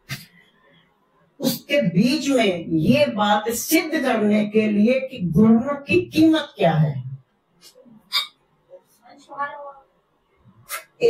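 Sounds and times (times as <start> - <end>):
breath sounds: 0.0 - 1.1
woman speaking: 1.4 - 7.2.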